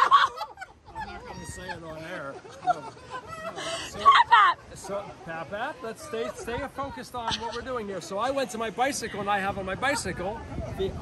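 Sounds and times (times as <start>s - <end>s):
high-pitched cackling laugh: 0.0s - 1.7s
people laughing: 0.0s - 8.4s
people talking quietly: 0.0s - 11.0s.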